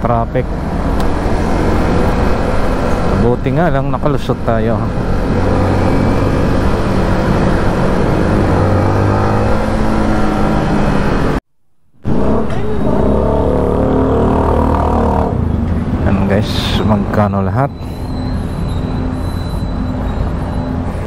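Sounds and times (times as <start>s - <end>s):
bus engine: 0.0s - 11.4s, 12.0s - 21.0s
wind and road noise: 0.0s - 11.4s, 12.0s - 21.0s.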